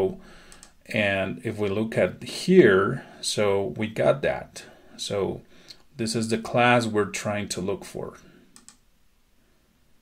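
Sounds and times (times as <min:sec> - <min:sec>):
faint mouse clicks: 0:00.5 - 0:00.8, 0:08.5 - 0:08.8.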